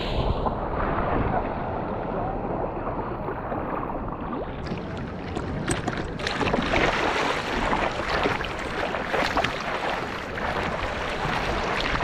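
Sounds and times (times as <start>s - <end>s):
water splashing along a surfboard: 0.0s - 12.0s.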